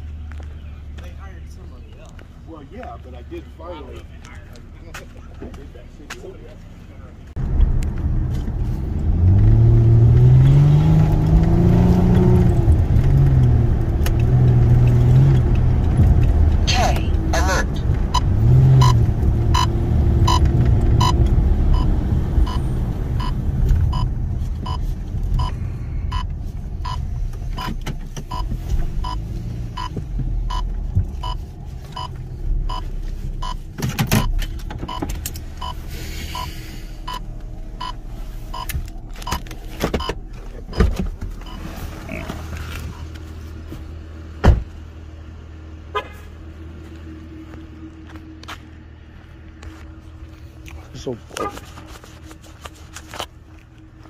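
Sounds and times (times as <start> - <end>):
car engine and road rumble: 0.0 - 54.0
turn signal clicking: 17.8 - 35.8.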